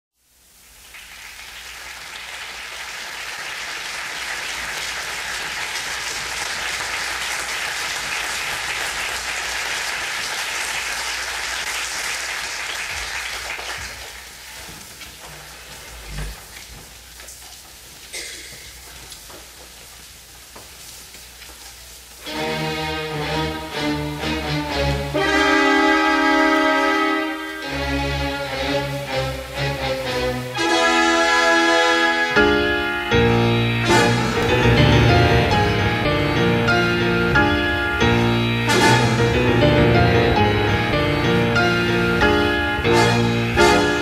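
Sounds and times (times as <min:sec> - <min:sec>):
audience applauding: 0:00.7 - 0:15.7, 0:28.8 - 0:44.0.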